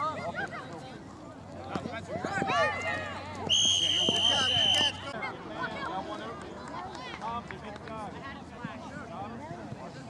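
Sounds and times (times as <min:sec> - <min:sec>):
people chattering: 0:00.0 - 0:10.0
referee's whistle blast: 0:03.5 - 0:05.1.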